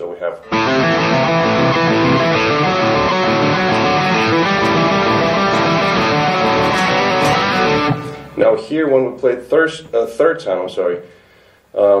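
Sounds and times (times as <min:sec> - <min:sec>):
electric guitar rock riff: 0:00.5 - 0:08.5.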